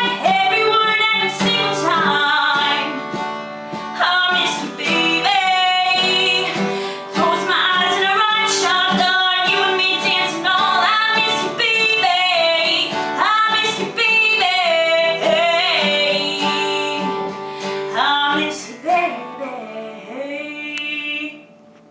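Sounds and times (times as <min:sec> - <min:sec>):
woman singing country song: 0:00.0 - 0:21.6
strummed acoustic guitar: 0:00.0 - 0:21.8.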